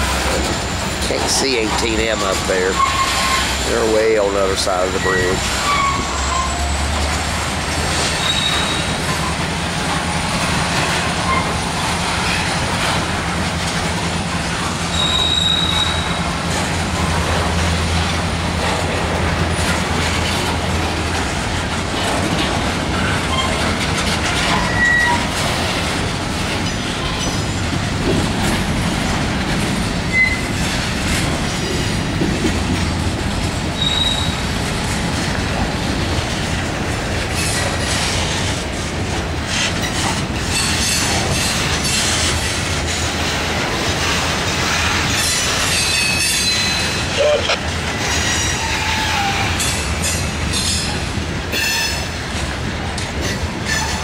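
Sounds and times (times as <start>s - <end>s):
freight train wheels rumbling: 0.0s - 54.0s
wheel squeals: 0.3s - 7.2s, 8.0s - 9.4s, 11.2s - 11.7s, 14.9s - 16.3s, 23.0s - 25.4s, 30.1s - 30.7s, 33.8s - 34.5s, 45.1s - 50.9s.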